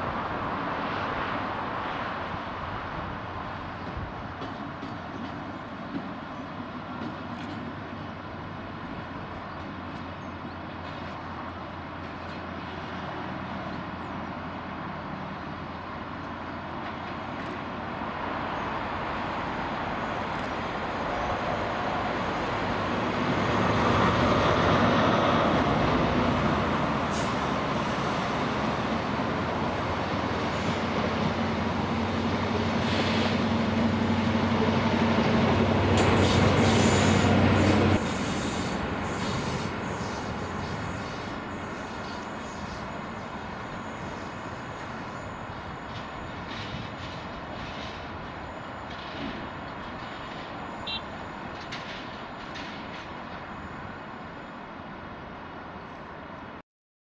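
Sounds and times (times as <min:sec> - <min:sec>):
diesel train drone: 0:00.0 - 0:56.6.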